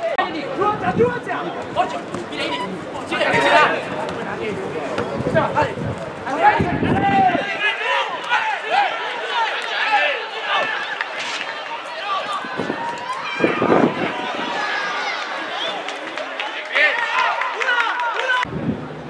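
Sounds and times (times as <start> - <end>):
players and spectators shouting: 0.0 - 18.5.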